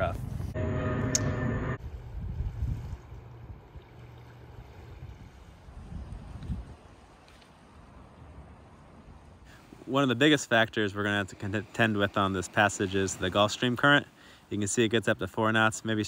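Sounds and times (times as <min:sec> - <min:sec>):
steady hum: 0:00.4 - 0:04.5
wind buffeting microphone: 0:01.8 - 0:07.2
water lapping: 0:01.9 - 0:14.6.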